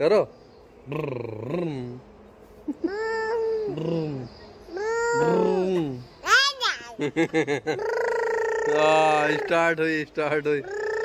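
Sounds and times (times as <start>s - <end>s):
small child high-pitched calls: 4.7s - 7.0s, 10.6s - 11.0s.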